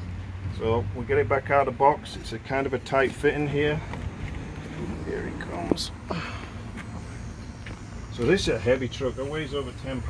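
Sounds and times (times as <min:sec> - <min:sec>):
low outdoor rumble: 0:00.0 - 0:10.0.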